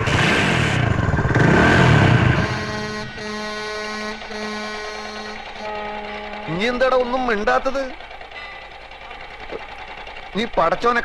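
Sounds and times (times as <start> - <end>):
motorcycle engine starting and revving: 0.0 - 11.0.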